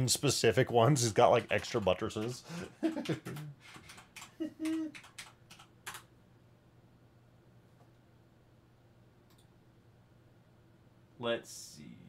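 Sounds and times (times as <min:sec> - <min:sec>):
computer keyboard key clicks: 0:03.0 - 0:06.1
short hummed vocal sound: 0:04.4 - 0:05.0.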